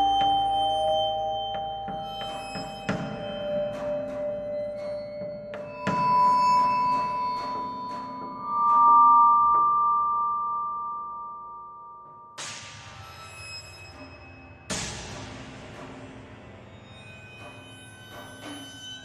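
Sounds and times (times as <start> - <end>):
ringing bell-like mallet notes: 0.0 - 12.4.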